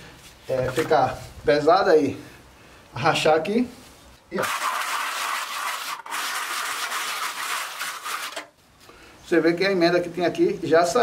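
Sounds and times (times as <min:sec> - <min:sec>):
tool scraping wet render: 0:04.4 - 0:08.5.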